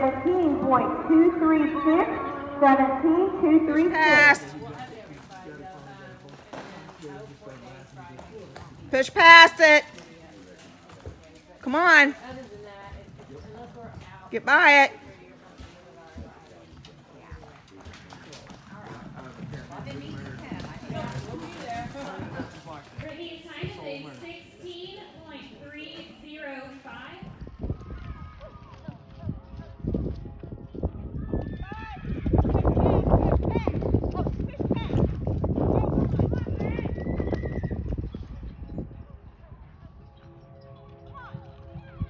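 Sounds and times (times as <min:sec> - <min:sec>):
people talking: 0:00.0 - 0:18.0, 0:18.8 - 0:27.3
horse hoofbeats on dirt: 0:02.6 - 0:42.0.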